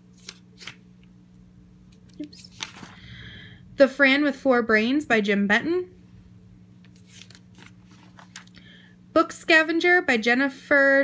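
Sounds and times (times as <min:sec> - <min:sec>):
low steady hum: 0:00.0 - 0:11.0
paper page rustling: 0:00.1 - 0:00.8, 0:02.0 - 0:03.1, 0:06.8 - 0:08.6.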